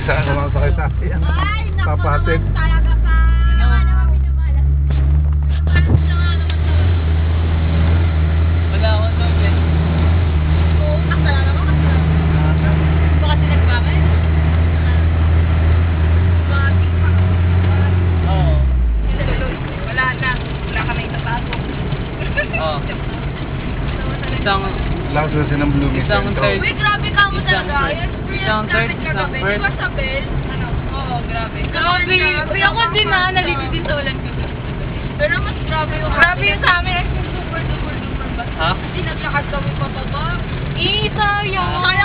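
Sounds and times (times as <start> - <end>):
voices: 0.0 - 7.0, 10.6 - 15.3, 16.3 - 42.0
vehicle engine droning: 0.0 - 42.0.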